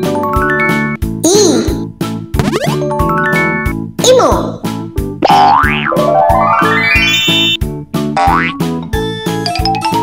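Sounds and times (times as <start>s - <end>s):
bouncy children's music: 0.0s - 10.0s
cartoon boing: 5.2s - 7.6s
cartoon rising glide: 5.9s - 7.6s.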